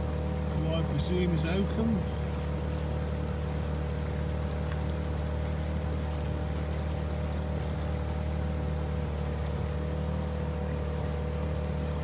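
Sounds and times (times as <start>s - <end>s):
outboard motor droning: 0.0s - 12.0s.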